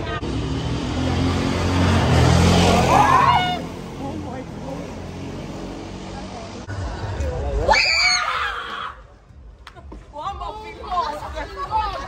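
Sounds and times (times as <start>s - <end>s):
vehicle engine passing by: 0.0s - 7.6s
street noise: 0.0s - 12.0s.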